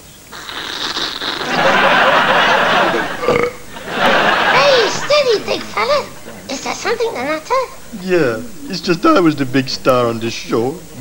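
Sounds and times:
slurping through a drinking straw: 0.3 - 1.6
audience laughter: 1.4 - 11.0.

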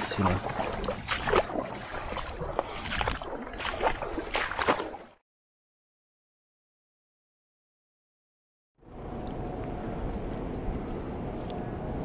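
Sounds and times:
river water sloshing: 0.0 - 5.2.

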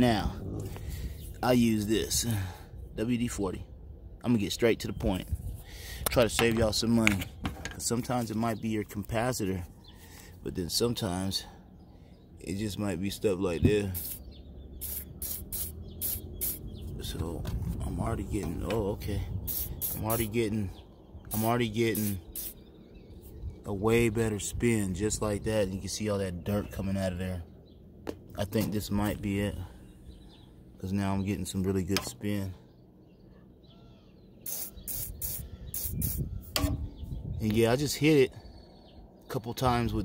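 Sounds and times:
aerosol can spraying: 14.0 - 16.7, 19.4 - 20.3, 21.3 - 22.6, 34.4 - 36.7.

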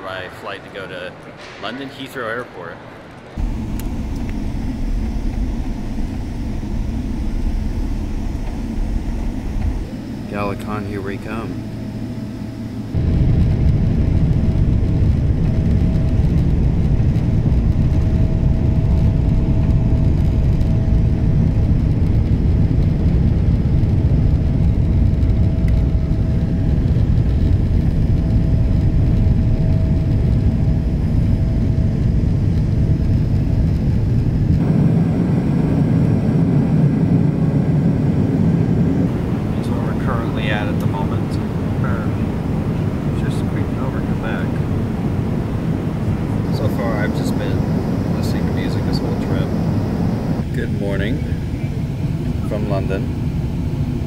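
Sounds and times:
faint steady engine whine: 0.0 - 54.0
jet engine rumble in cabin: 3.3 - 54.0.

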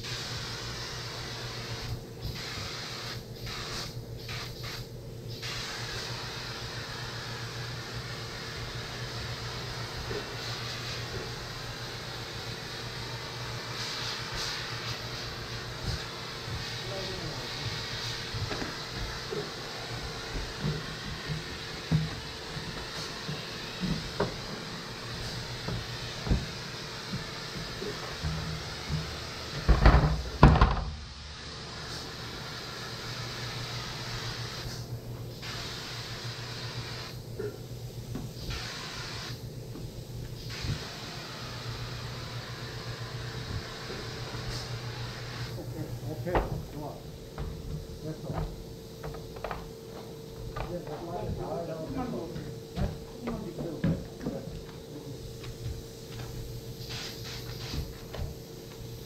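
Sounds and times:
steady low hum: 0.0 - 32.2, 41.4 - 59.0
compressed air hissing: 0.0 - 59.0
knocks and thumps: 20.4 - 22.2, 27.6 - 31.0, 46.3 - 46.7, 47.3 - 51.5, 52.3 - 54.8.

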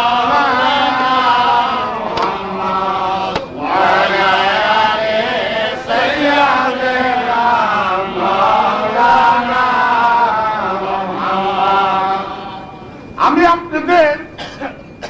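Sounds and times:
low drone: 0.0 - 15.0
voices chanting: 0.0 - 15.0.

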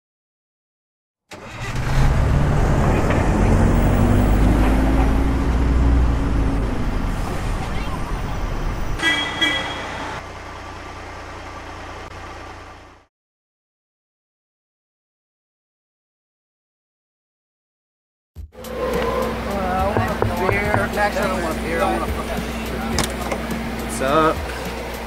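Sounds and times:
heavy bus engine running: 1.3 - 13.1, 18.6 - 25.0
short horn toot: 9.0 - 10.0.

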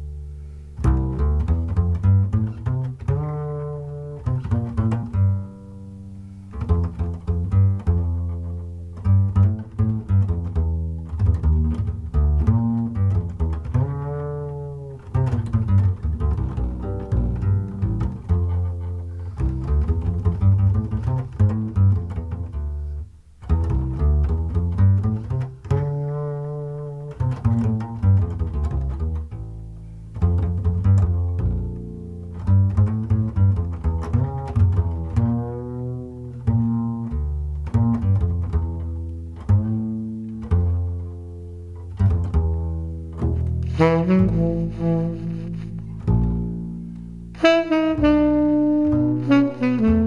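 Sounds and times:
plucked double bass: 0.0 - 50.0
tenor saxophone melody: 43.2 - 50.0.

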